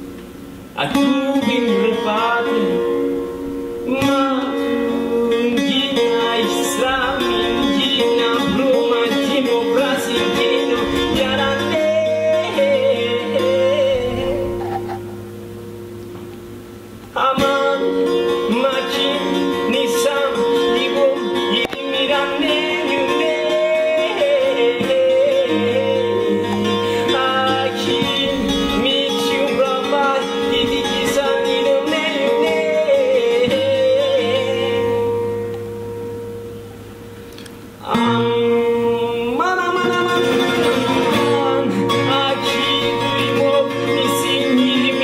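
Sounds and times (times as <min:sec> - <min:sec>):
long-necked lute: 0:00.0 - 0:45.0
man singing: 0:00.8 - 0:14.9, 0:17.1 - 0:35.5, 0:37.8 - 0:45.0
low accordion bass note: 0:13.9 - 0:15.4.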